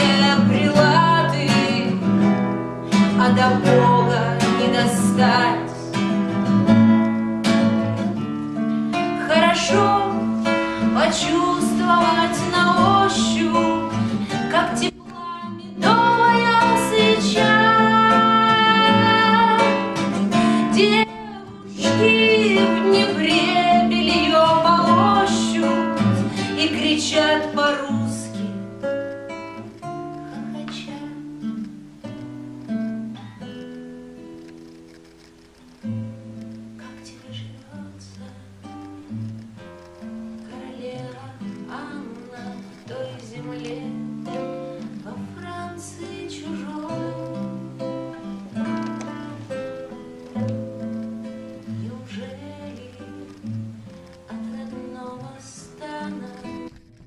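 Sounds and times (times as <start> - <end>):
woman singing: 0.0 - 6.0, 9.0 - 28.7, 30.1 - 31.6, 36.8 - 39.0, 40.4 - 50.6, 51.5 - 56.8
acoustic guitar: 0.0 - 57.0.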